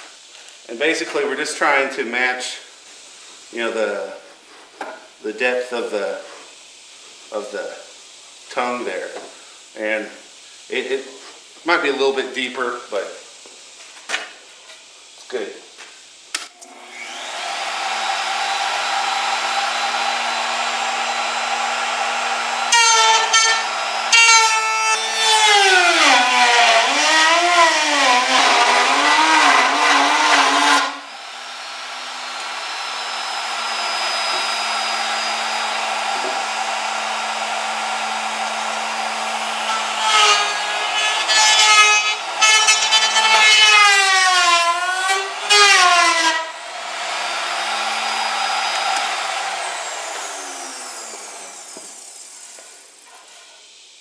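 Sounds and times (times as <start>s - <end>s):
router motor whining: 16.5s - 53.5s
router bit cutting wood: 16.5s - 53.8s.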